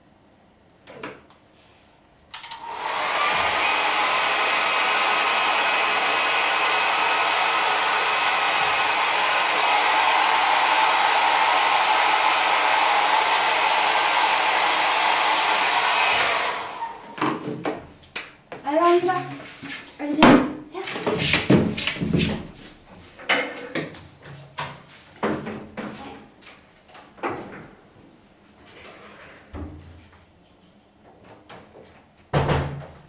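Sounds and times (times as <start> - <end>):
hair dryer blowing: 2.4 - 17.2.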